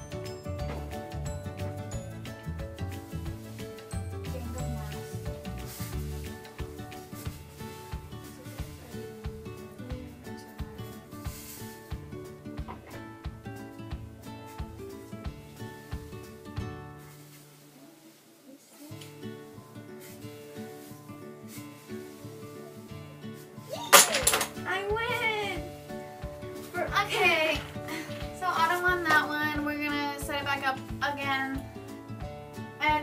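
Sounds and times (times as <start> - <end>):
background music with beat: 0.0 - 17.4, 24.6 - 33.0
wooden block tower collapsing: 23.7 - 24.6.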